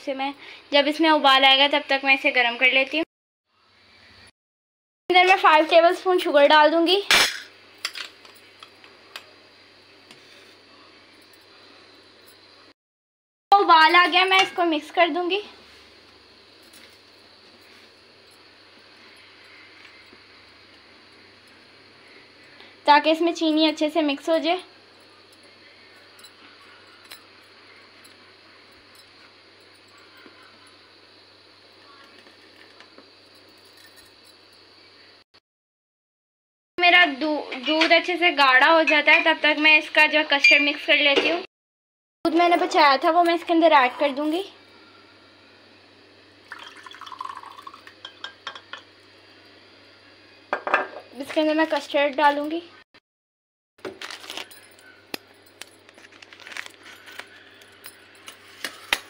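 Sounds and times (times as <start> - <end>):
faint steady hiss: 13.6 - 35.2
spoon clinks: 40.4 - 40.8
sugar pouring into pan: 46.4 - 48.3.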